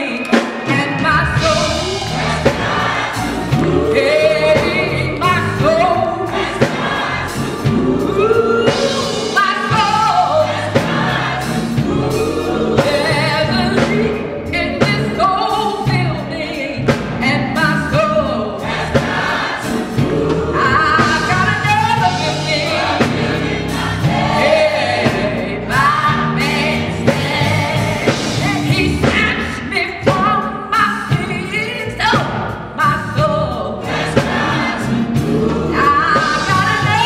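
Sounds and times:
gospel choir singing: 0.0 - 37.0.

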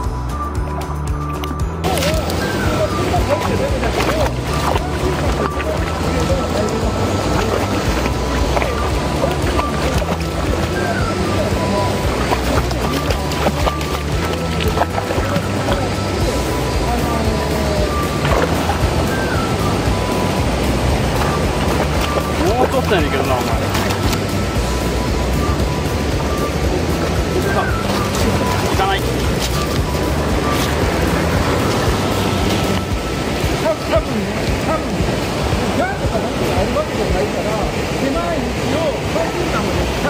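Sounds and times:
background music: 0.0 - 40.0
water rushing over rocks: 0.0 - 40.0
dog splashing through water: 1.8 - 16.0, 17.8 - 24.4, 27.1 - 35.6.

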